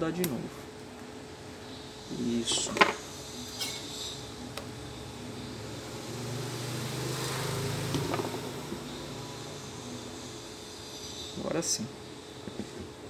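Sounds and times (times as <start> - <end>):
faint background hum: 0.0 - 13.0
passing road vehicle: 5.5 - 10.4.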